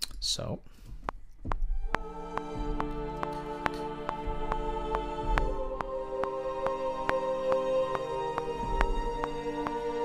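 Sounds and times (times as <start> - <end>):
sharp clicks on the beat: 1.0 - 10.0
choir and string chord: 1.9 - 10.0.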